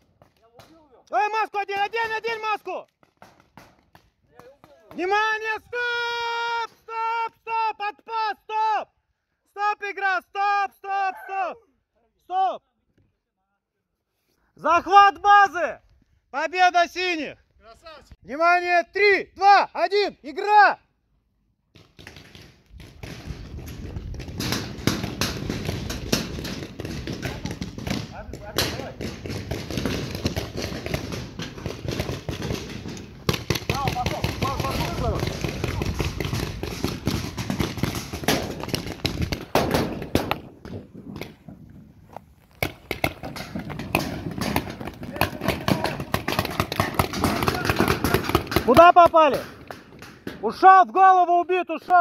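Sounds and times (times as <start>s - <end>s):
paintball markers firing: 2.9s - 5.1s, 21.7s - 41.5s, 42.5s - 50.4s.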